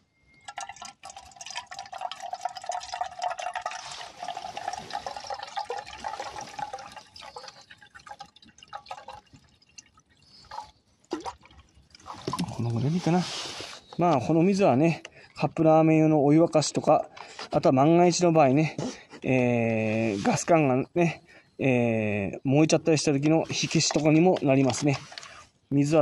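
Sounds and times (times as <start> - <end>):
water pouring into kettle: 0.4 - 12.8
man talking: 12.4 - 13.4, 14.0 - 25.1, 25.7 - 26.0.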